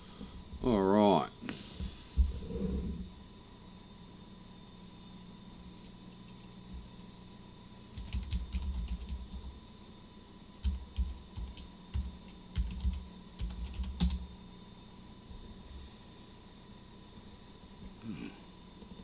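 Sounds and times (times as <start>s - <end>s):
typing on computer keyboard: 7.9s - 9.5s, 10.6s - 14.2s, 18.8s - 19.0s.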